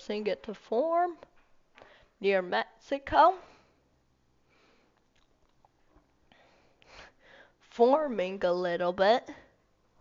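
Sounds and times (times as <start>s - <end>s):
soft breath: 1.7s - 2.2s, 3.4s - 5.1s, 6.2s - 7.6s
faint mouth clicks: 5.0s - 5.8s.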